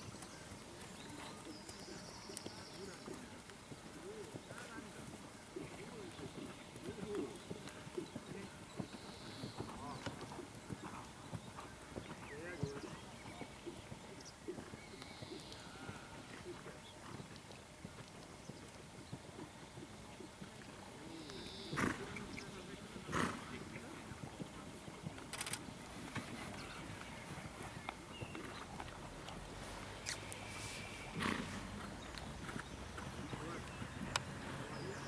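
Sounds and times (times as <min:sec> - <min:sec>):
horse hoofbeats on sand: 0:00.0 - 0:29.9
murmur of distant voices: 0:00.0 - 0:35.0.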